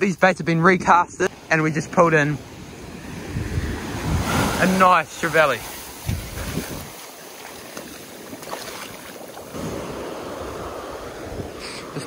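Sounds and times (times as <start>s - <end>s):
wind buffeting microphone: 2.5s - 12.0s
surf breaking on beach: 2.6s - 12.0s.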